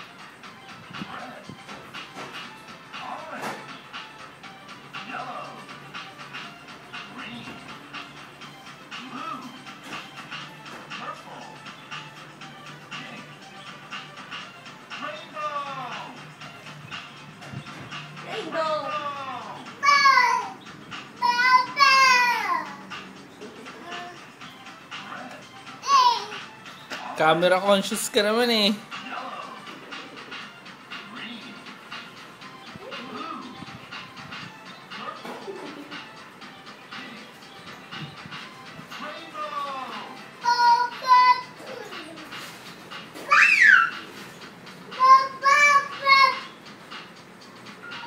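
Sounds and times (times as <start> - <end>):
toddler singing: 25.8 - 26.4, 40.4 - 42.1.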